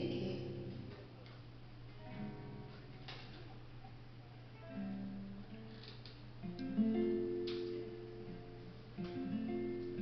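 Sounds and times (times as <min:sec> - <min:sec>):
low steady hum: 0:00.0 - 0:10.0
acoustic guitar chord ringing: 0:06.4 - 0:10.0.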